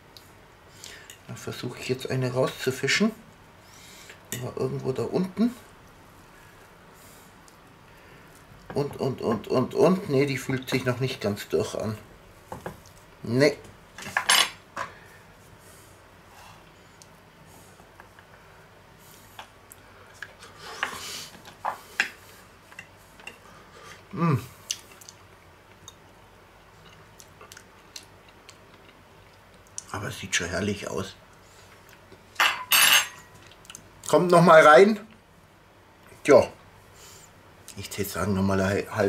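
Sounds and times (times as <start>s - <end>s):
cutlery clinking against dish: 32.4s - 33.3s.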